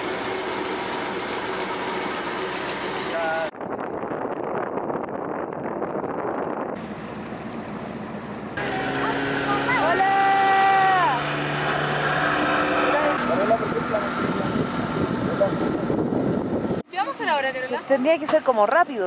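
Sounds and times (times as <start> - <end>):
motorboat engine running: 0.0 - 3.5, 6.0 - 16.8
water noise: 0.0 - 4.8, 6.8 - 19.0
wind: 0.0 - 19.0.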